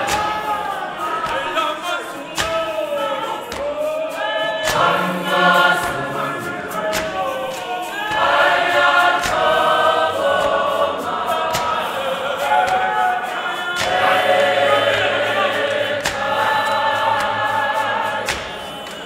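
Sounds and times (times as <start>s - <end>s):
men's choir singing a hymn: 0.0s - 19.0s
sharp beat: 0.0s - 19.0s.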